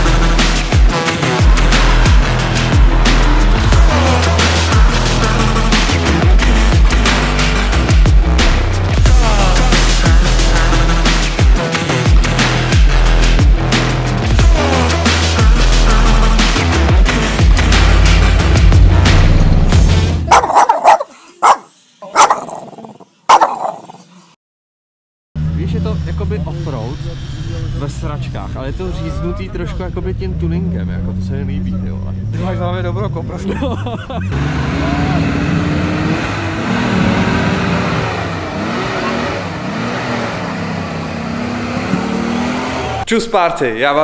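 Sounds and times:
bass-heavy intro music: 0.0 - 20.5, 25.4 - 43.1
off-road vehicle engine revving: 0.0 - 21.6, 25.4 - 43.1.

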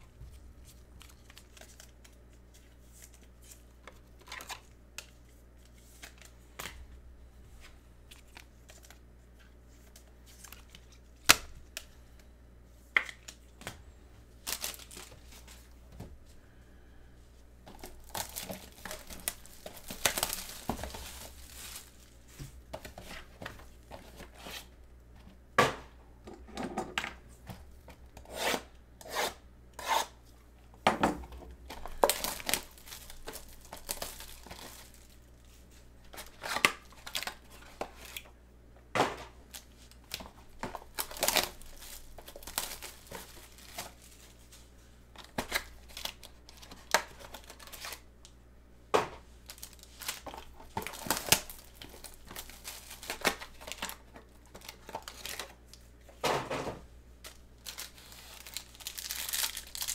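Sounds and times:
plastic wrap crinkling: 0.3 - 6.3, 14.4 - 15.8, 17.7 - 24.4, 31.6 - 38.2, 39.4 - 48.0, 49.4 - 55.9, 57.2 - 59.9
foil pack rustling: 14.4 - 15.8, 17.7 - 24.6, 31.6 - 38.2, 39.5 - 48.0, 49.4 - 55.8, 57.2 - 59.9.

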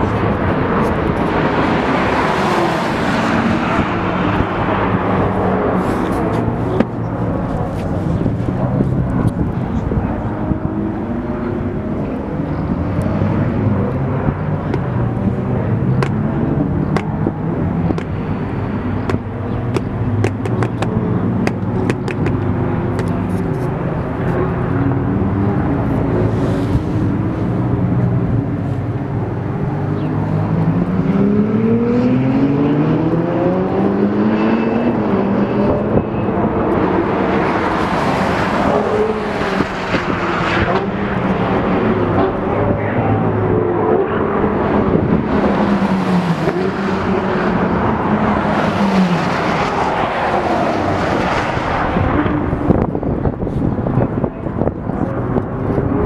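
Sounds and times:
sports car engine accelerating: 0.0 - 56.0
car passing by: 44.8 - 52.9.

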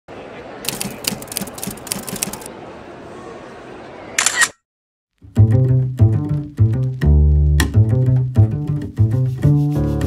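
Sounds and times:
camera shutter click: 4.2 - 4.6
music with string bass line: 5.2 - 10.0.

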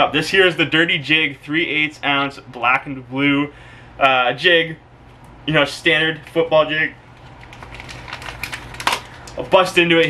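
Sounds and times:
plastic packaging crinkling: 7.0 - 9.8.

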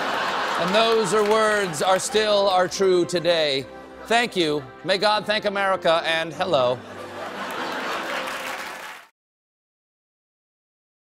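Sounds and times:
audience applauding: 0.0 - 2.7, 7.0 - 9.2.

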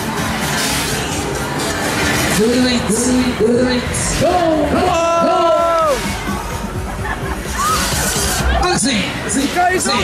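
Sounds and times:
crowd chatter: 0.0 - 10.0
fairground music: 0.0 - 10.0
people shouting: 4.3 - 6.4.

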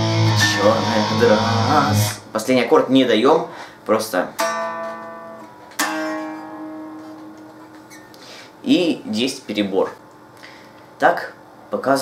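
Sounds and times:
electric guitar notes ringing: 0.0 - 2.4, 4.4 - 8.2.

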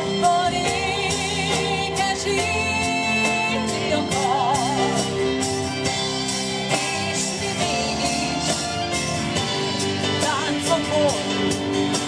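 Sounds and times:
live folk-rock band playing: 0.0 - 12.0.

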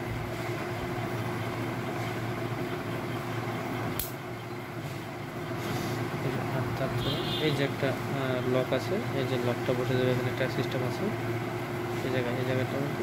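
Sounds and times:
low background hum: 0.0 - 13.0
sharp click: 4.0 - 4.2.

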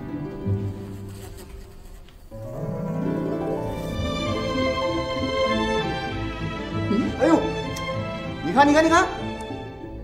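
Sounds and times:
low bowed strings music: 0.0 - 10.0
fly buzzing: 0.7 - 6.0.

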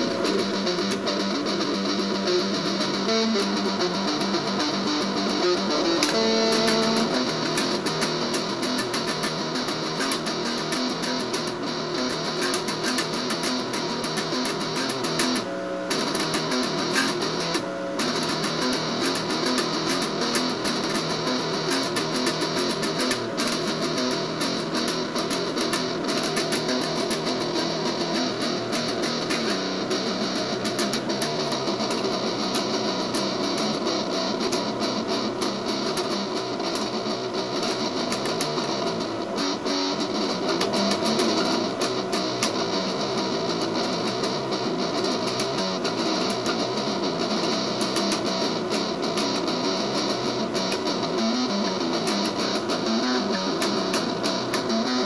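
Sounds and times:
distorted electric guitar: 0.0 - 55.0.

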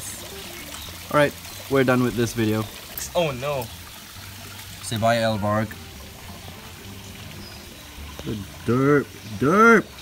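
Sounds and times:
water pouring into pond: 0.0 - 10.0.

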